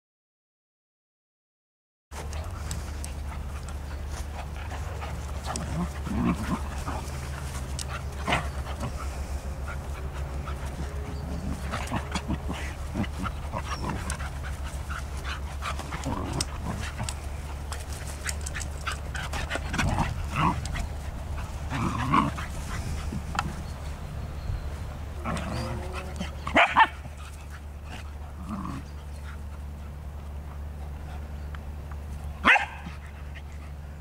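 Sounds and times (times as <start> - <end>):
steady low rumble: 2.1 - 34.0
dogs scuffling: 2.2 - 29.8.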